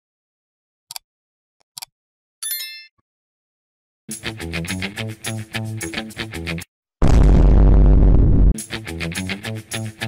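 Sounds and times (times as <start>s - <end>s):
bright bell ding: 2.4s - 2.9s.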